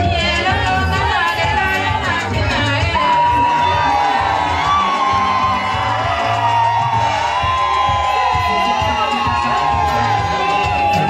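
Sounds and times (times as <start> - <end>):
music with steady bass line: 0.0 - 11.0
women cheering and whooping: 3.0 - 11.0.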